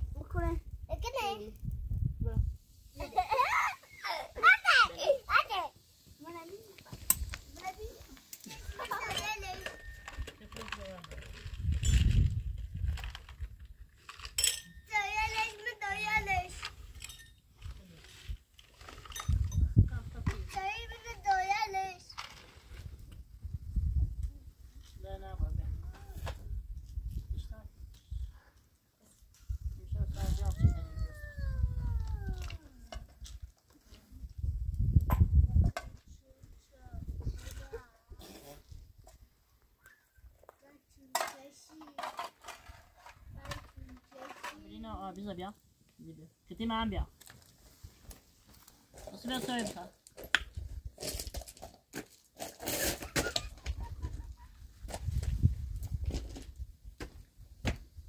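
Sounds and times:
wind rumbling on microphone: 1.5 - 2.8, 11.0 - 14.0, 19.0 - 20.9, 22.6 - 28.5, 29.4 - 33.5, 34.1 - 37.8, 53.6 - 58.0.

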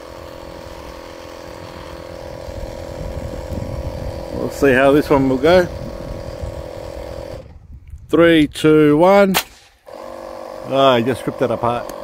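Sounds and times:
small air compressor running: 0.0 - 7.8, 9.7 - 12.0
wind rumble on microphone: 1.6 - 9.2.

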